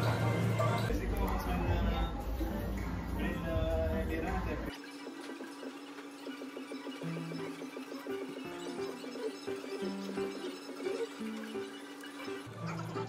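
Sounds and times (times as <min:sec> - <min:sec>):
soft background melody: 0:00.0 - 0:13.0.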